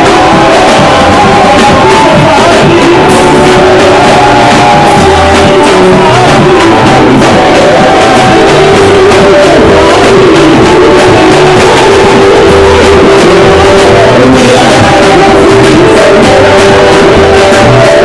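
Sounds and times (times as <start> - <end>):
band playing: 0.0 - 18.0
bass line: 0.0 - 18.0
man and woman singing: 0.0 - 18.0.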